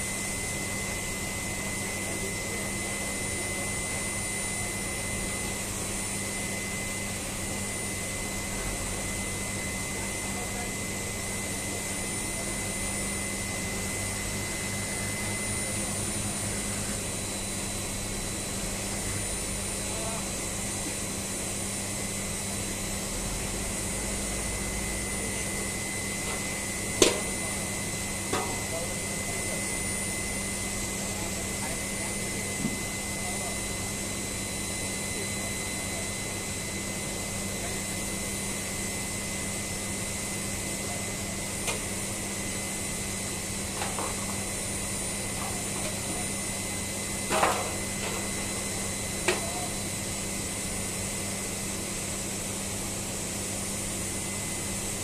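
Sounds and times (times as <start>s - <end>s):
machinery drone and hiss: 0.0s - 52.7s.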